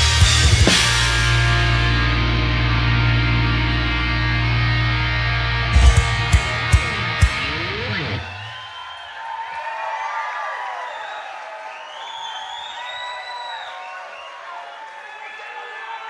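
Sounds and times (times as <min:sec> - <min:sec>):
rock band music: 0:00.0 - 0:08.5
audience cheering and shouting: 0:00.0 - 0:16.0.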